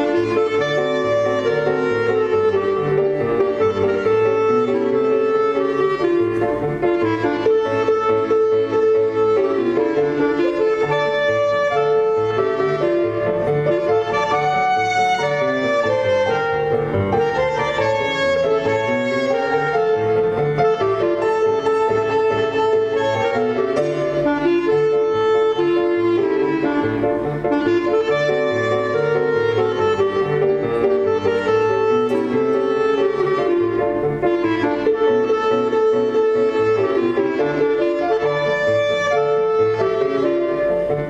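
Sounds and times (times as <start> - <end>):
clarinet melody: 0.0 - 41.0
piano accompaniment: 0.0 - 41.0.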